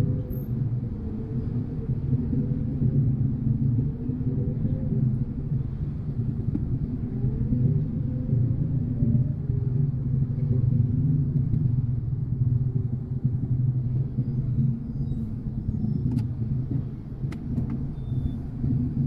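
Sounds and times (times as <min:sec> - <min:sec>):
engines rumbling in slow traffic: 0:00.0 - 0:19.0.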